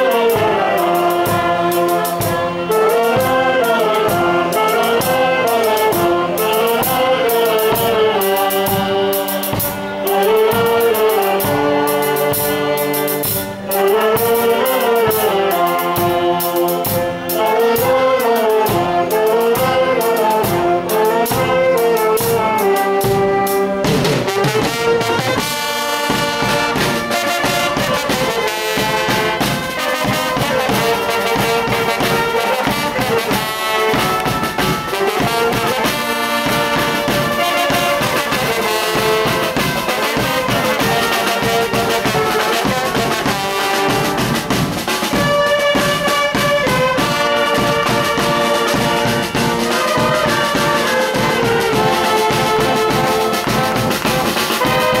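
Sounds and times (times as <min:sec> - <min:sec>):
full brass band playing: 0:00.0 - 0:55.0
saxophone melody: 0:00.0 - 0:55.0
steady drum beat: 0:00.0 - 0:55.0.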